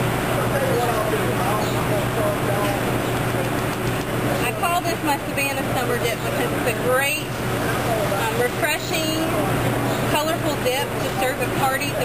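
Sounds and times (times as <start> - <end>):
traffic: 0.0 - 12.0
people talking: 0.3 - 12.0.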